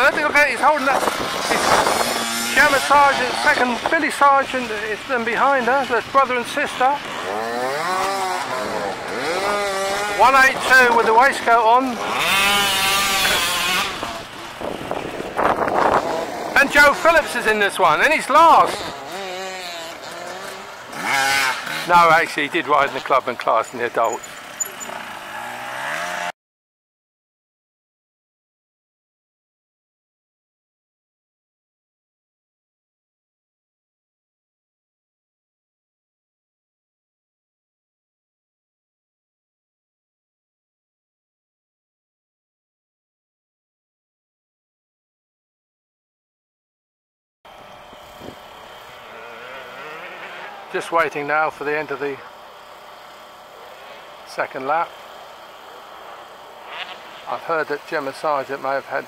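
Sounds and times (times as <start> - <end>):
motorcycle engine running: 0.0 - 26.3, 47.5 - 59.0.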